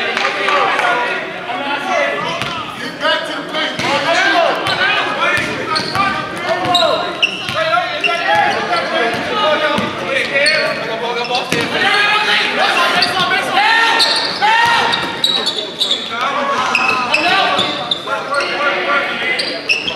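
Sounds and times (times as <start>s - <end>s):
sneaker squeaks: 4.6s - 11.8s, 12.8s - 18.7s, 19.3s - 19.9s
people shouting: 11.7s - 15.2s.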